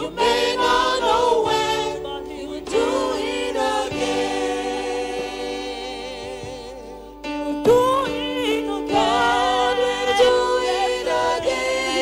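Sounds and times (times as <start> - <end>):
church choir singing: 0.0 - 7.2, 8.3 - 12.0.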